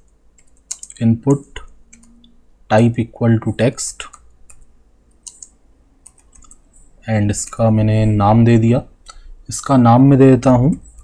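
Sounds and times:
computer keyboard keystrokes: 0.4 - 1.0, 4.0 - 6.6.

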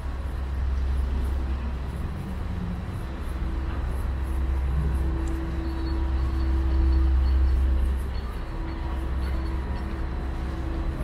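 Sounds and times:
city street traffic rumble: 0.0 - 11.0
faint steady hum: 0.0 - 11.0.

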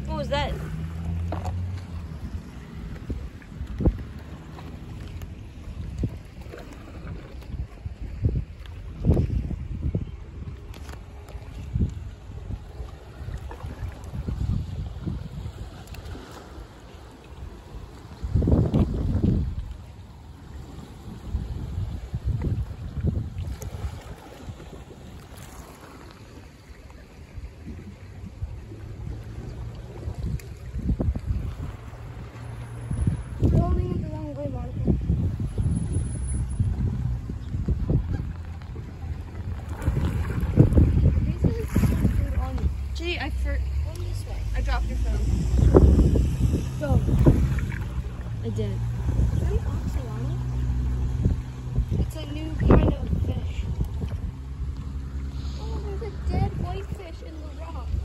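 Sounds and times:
sea water against rocks: 0.0 - 58.0
wind buffeting microphone: 0.0 - 58.0.

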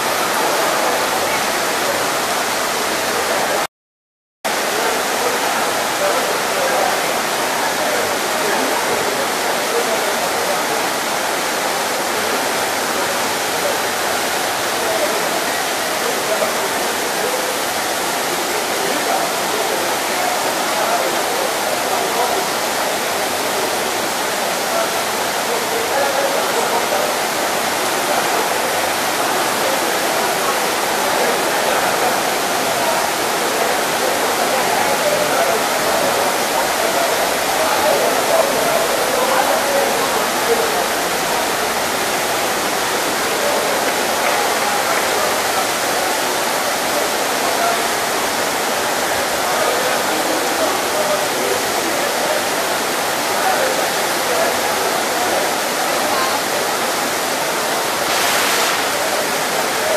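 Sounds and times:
heavy rain: 0.0 - 3.7, 4.5 - 59.9
water gushing from spout: 53.5 - 59.9.

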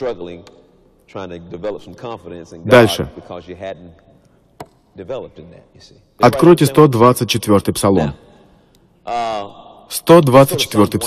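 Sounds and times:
man talking: 0.0 - 4.2, 4.9 - 8.3, 9.0 - 11.0.

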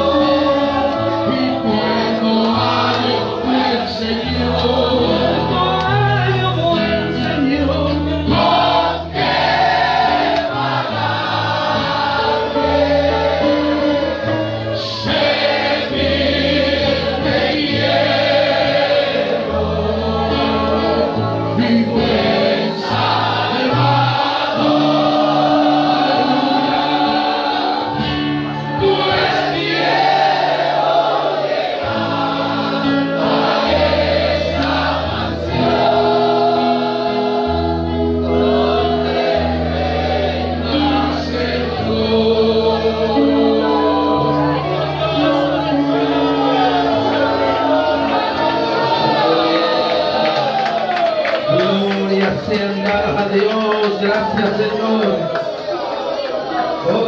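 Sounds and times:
sustained bass notes: 0.0 - 31.0
congregation singing a hymn: 0.0 - 57.0.

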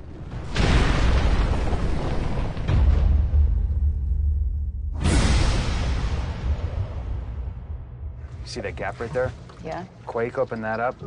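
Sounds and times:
deep cinematic boom: 0.0 - 9.3.

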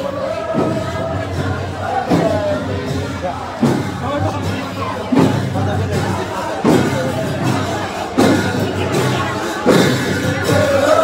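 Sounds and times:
drum struck slowly: 0.0 - 11.0.

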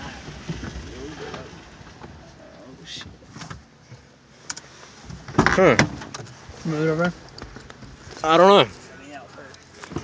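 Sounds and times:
low rumble inside car: 0.0 - 10.0.

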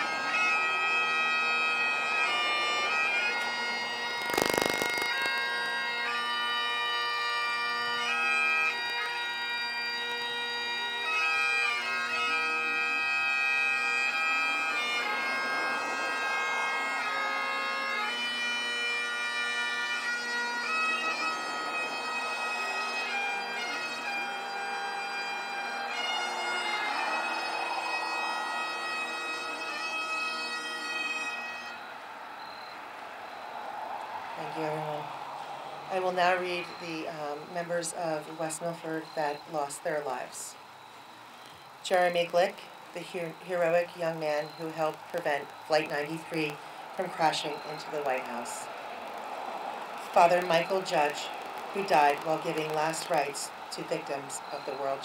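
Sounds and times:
bagpipes playing slow melody: 0.0 - 33.8, 34.4 - 55.0.

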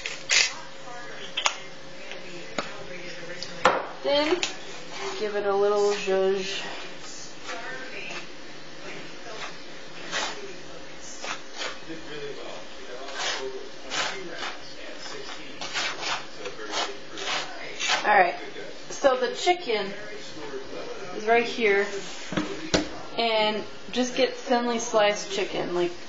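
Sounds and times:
fork scraping on a plate: 9.3 - 10.5, 11.1 - 11.8, 13.0 - 18.0.

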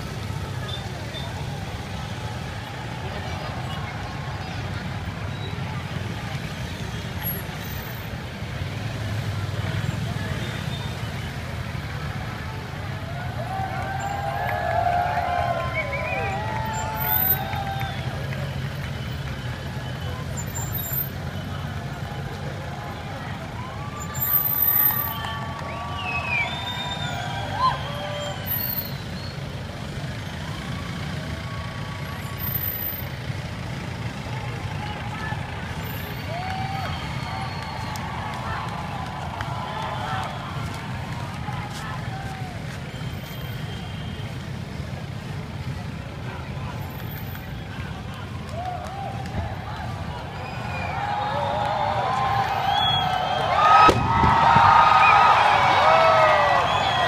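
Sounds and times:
onlookers shouting: 9.8 - 29.2, 30.0 - 43.9, 45.6 - 57.0.

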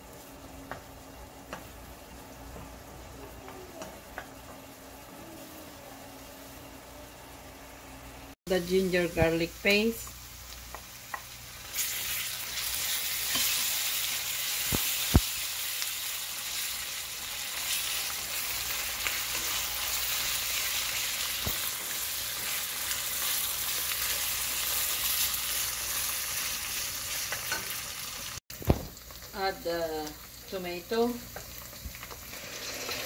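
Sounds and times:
onions sizzling in hot oil: 0.0 - 33.0.

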